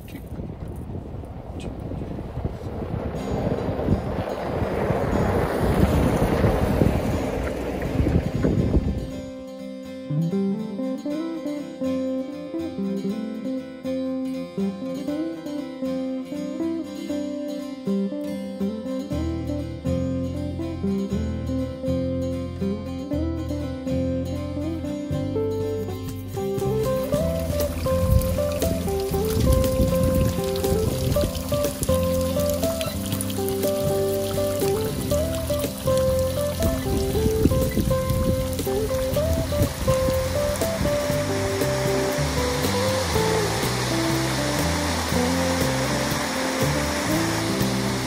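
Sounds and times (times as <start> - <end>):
vehicle driving by: 2.0 - 9.1
plucked acoustic guitar music: 2.9 - 48.0
bass line: 19.1 - 48.0.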